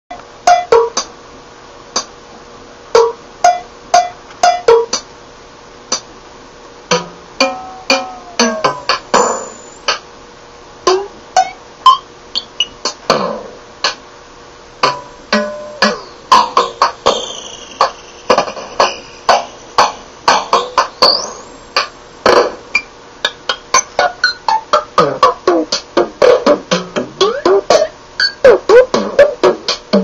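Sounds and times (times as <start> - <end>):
drum machine hits: 0.5 - 1.1, 2.9 - 5.1, 6.9 - 10.1, 10.9 - 14.0, 14.8 - 30.0.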